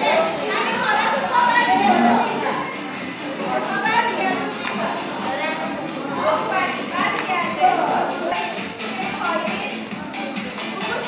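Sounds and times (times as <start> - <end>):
women talking over one another: 0.3 - 2.8.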